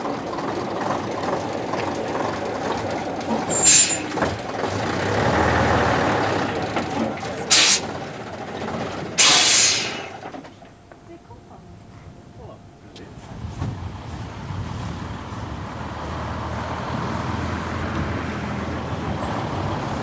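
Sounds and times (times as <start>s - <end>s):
lorry engine running: 0.0s - 20.0s
air brake hisses: 3.6s - 4.2s, 7.5s - 7.9s, 9.2s - 10.2s.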